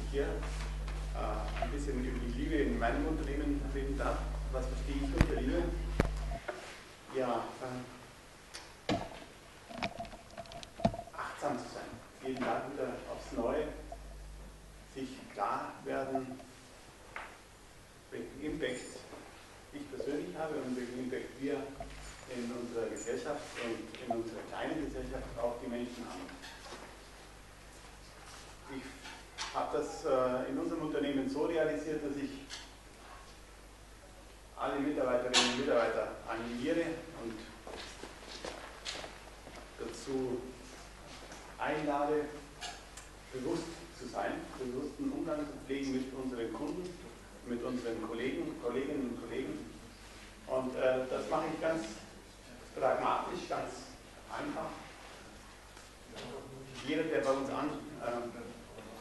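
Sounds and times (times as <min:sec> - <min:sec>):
low hum: 0:00.0 - 0:06.6, 0:09.0 - 0:16.6, 0:19.8 - 0:23.2.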